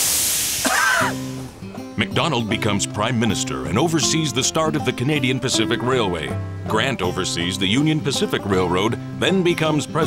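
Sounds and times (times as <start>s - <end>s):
steam locomotive hissing: 0.0s - 1.6s
music with held notes: 1.0s - 10.0s.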